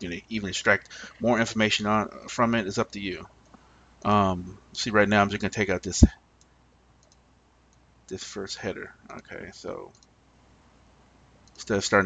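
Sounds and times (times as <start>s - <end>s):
person speaking: 0.0s - 3.3s, 4.0s - 6.2s, 11.6s - 12.0s
computer mouse clicks: 6.4s - 7.8s, 9.9s - 10.2s, 11.4s - 11.7s.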